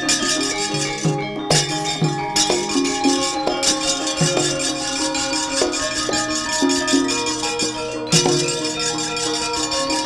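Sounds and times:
ringing metallophone notes: 0.0s - 10.0s.

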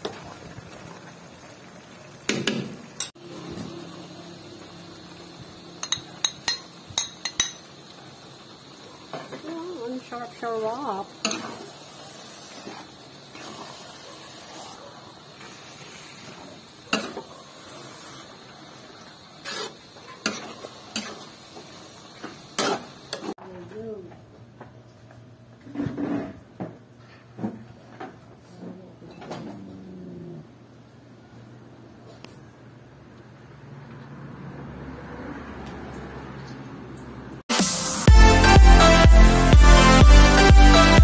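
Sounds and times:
spoon knocking against pot: 5.8s - 7.6s
metal spoon stirring in a pot: 5.8s - 7.7s, 19.4s - 21.2s.

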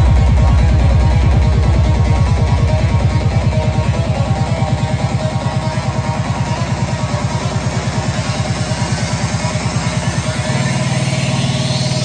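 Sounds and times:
psytrance over sound system: 0.0s - 12.0s.

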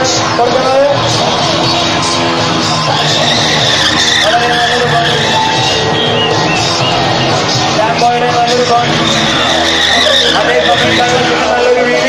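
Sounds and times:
motorcycle engine running: 0.0s - 12.0s
motorcycle tyre squealing on concrete: 0.0s - 12.0s
music: 0.0s - 12.0s.

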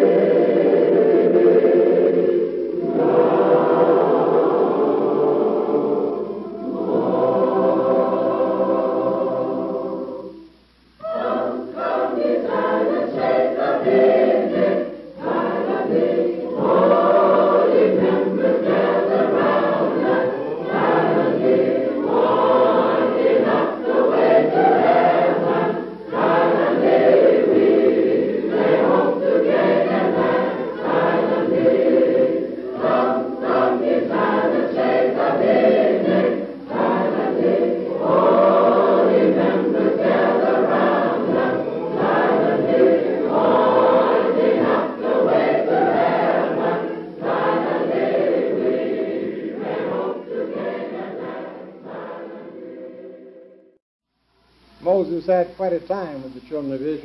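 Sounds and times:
group singing: 0.0s - 53.8s.

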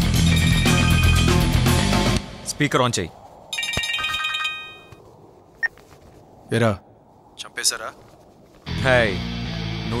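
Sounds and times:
mobile phone ringtone trilling: 3.6s - 4.9s.

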